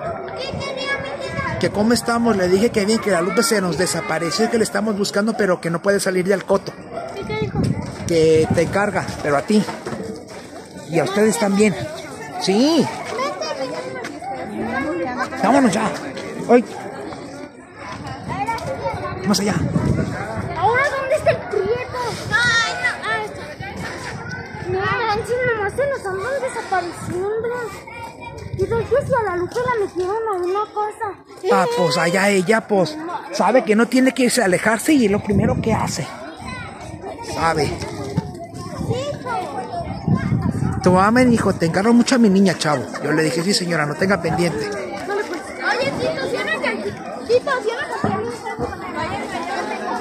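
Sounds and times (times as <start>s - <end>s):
people chattering: 0.0s - 50.0s
people talking in background: 0.0s - 50.0s.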